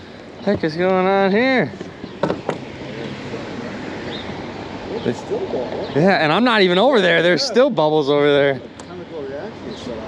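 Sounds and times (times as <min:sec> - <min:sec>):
open water background noise: 0:00.0 - 0:10.0.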